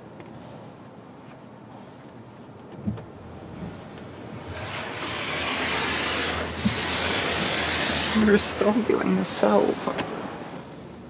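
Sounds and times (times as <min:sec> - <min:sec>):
car wash spray hissing: 0:04.4 - 0:08.9.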